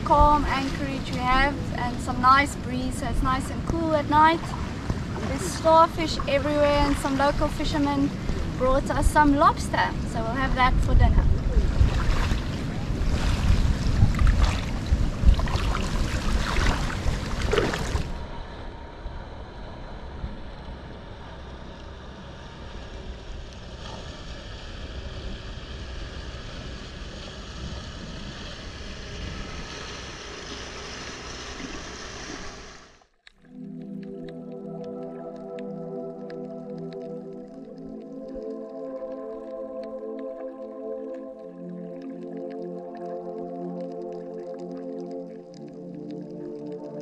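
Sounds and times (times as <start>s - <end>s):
soft background music: 0.0s - 11.3s, 33.4s - 47.0s
wind buffeting microphone: 0.0s - 31.5s
shallow water lapping: 0.0s - 47.0s
steady outdoor hiss: 0.0s - 47.0s.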